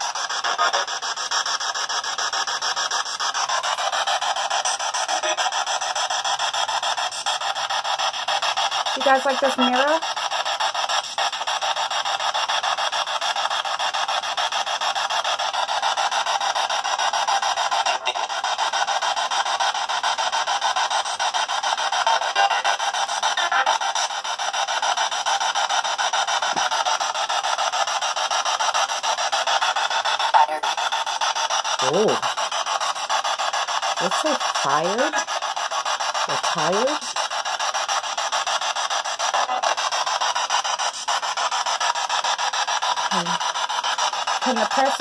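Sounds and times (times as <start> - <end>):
voice-like radio fragments: 0.0 - 1.4, 3.4 - 6.2, 8.9 - 10.1, 17.7 - 18.9, 22.0 - 24.2, 30.2 - 30.9, 31.6 - 32.4, 33.8 - 35.4, 36.2 - 37.2, 43.0 - 43.5, 44.3 - 45.0
choppy radio static hiss: 0.0 - 45.0.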